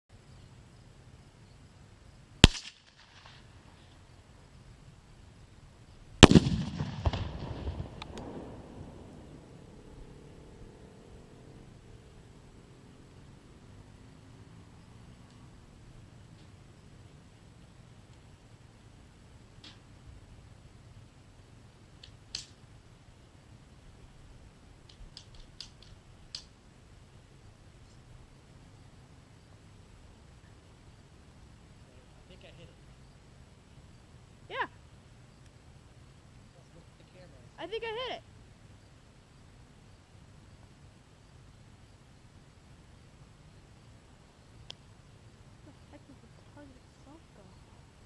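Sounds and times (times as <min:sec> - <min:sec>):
distant rifle shots: 0:02.4 - 0:03.4, 0:06.2 - 0:09.0
gunshot hitting metal target: 0:06.2 - 0:07.4.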